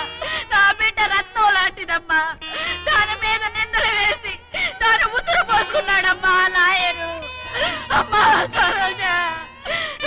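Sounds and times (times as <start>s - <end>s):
person wailing in grief: 7.4s - 10.0s.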